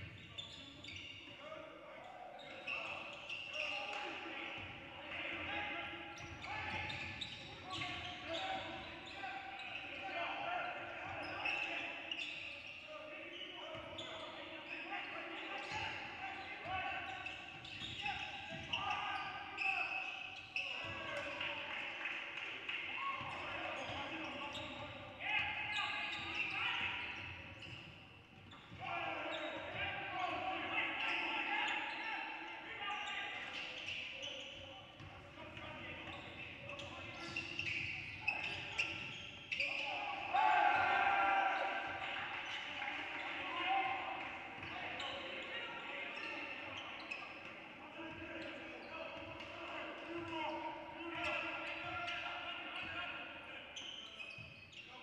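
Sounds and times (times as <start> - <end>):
players calling out: 28.7 - 34.7, 35.5 - 52.9.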